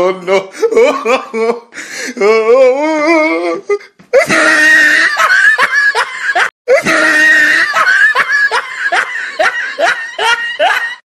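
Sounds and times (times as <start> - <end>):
high-pitched laughter: 4.2 - 11.0.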